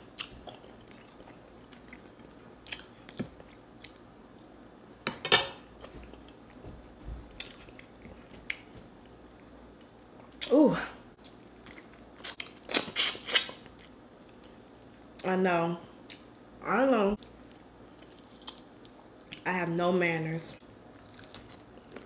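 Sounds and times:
person chewing meat off bone: 0:17.4 - 0:19.4.

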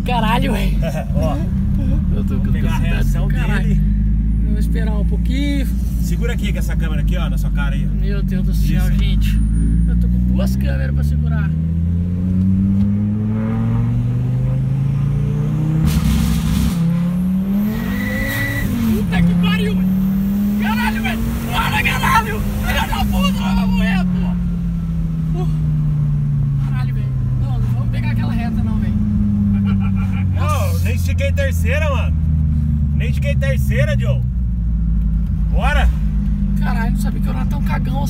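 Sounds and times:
car engine accelerating: 0:00.0 - 0:38.0
people exclaiming: 0:20.6 - 0:24.4.

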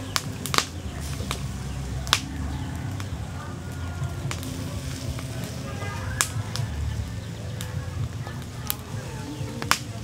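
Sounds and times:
charcoal embers crackling: 0:00.0 - 0:10.0
sharp pops from embers: 0:00.0 - 0:10.0.

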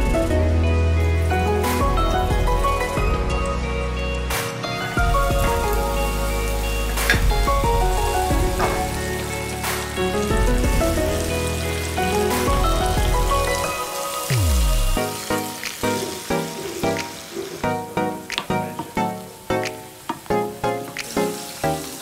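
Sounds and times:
background music: 0:00.0 - 0:22.0
chicken sizzling in hot oil: 0:05.0 - 0:22.0.

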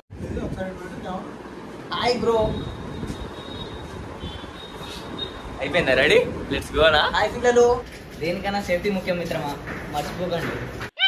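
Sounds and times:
steady background noise: 0:00.1 - 0:11.0.

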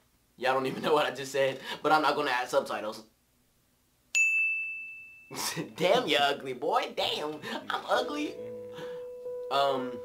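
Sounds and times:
high ringing ding: 0:04.1 - 0:05.4.

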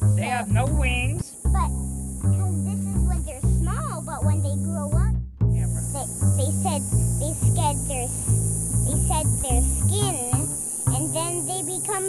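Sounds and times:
cicadas buzzing: 0:00.0 - 0:12.0
child talking: 0:00.2 - 0:12.0.

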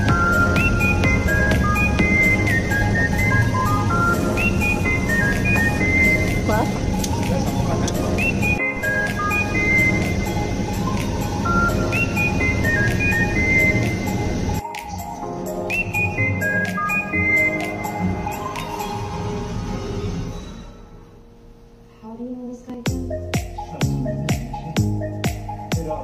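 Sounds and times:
background music with repeating melody: 0:00.0 - 0:21.9, 0:22.8 - 0:26.0.

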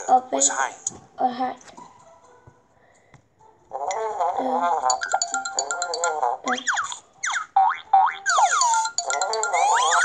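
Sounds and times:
cartoon springy boings: 0:03.8 - 0:10.0
light background music: 0:04.9 - 0:06.4, 0:08.3 - 0:10.0.

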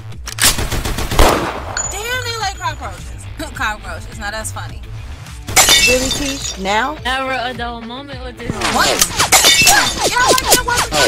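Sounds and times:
gunshots: 0:00.4 - 0:01.8
loud gun blast: 0:00.6 - 0:01.8.

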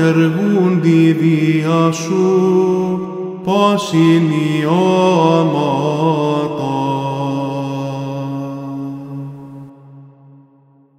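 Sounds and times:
man singing a chant: 0:00.0 - 0:09.9.

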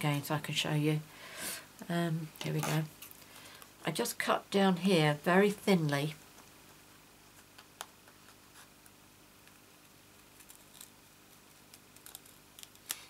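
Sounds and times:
scissors snipping foam: 0:11.7 - 0:13.0.

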